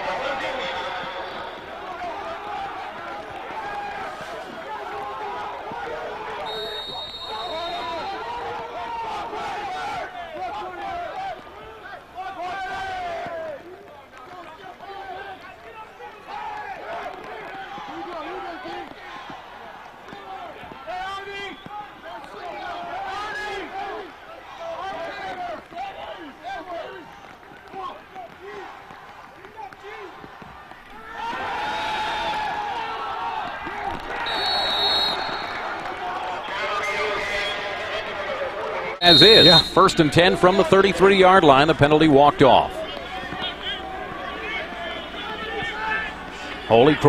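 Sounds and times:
crowd chatter: 0.0s - 47.0s
whistle blowing: 6.4s - 8.2s, 34.2s - 35.9s, 39.0s - 40.1s.

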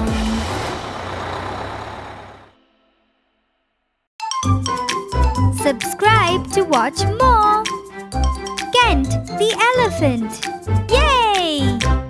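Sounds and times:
cartoon bus engine rumble: 0.0s - 2.9s.

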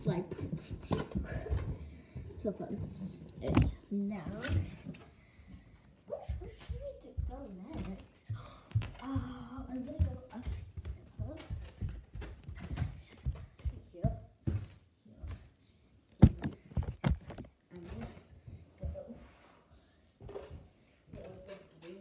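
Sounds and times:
balloon thumps: 16.2s - 17.5s.

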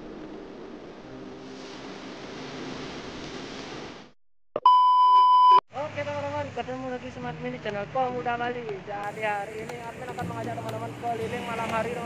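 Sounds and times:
high test-tone beep: 4.6s - 5.6s
steady background hiss: 9.0s - 12.0s.

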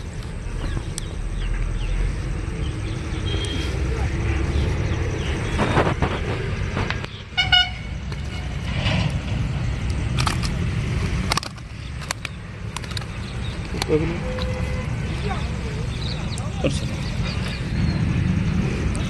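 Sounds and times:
steady low rumble: 0.0s - 19.0s
vehicle horn toot: 7.4s - 8.6s, 14.1s - 15.0s.

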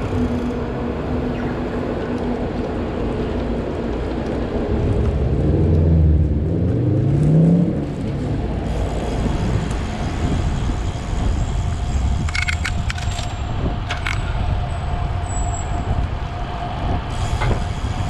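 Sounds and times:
city traffic: 0.0s - 18.0s
wind and road noise rumble: 0.0s - 18.0s
vehicle engine accelerating: 4.1s - 12.9s.

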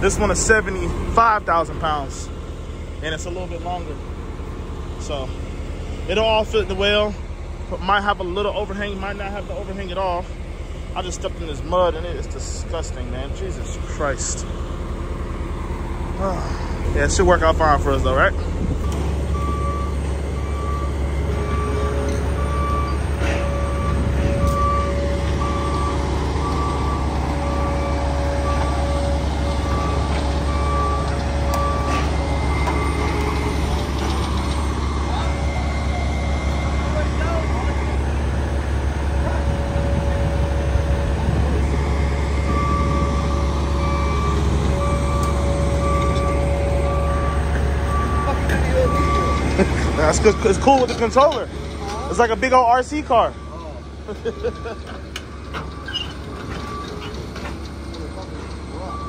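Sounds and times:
diesel engine running: 0.0s - 59.0s
travel alarm beeping: 18.8s - 38.4s, 39.7s - 57.1s, 58.7s - 59.0s.

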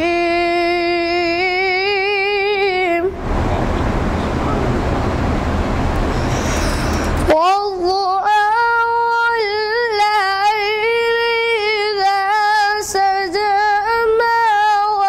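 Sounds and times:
boy singing unaccompanied: 0.0s - 3.2s, 7.3s - 15.0s
loud steady rushing noise: 3.0s - 7.4s.

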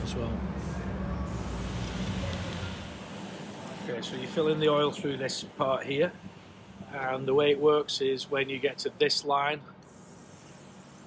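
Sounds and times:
even hiss: 0.6s - 11.0s.

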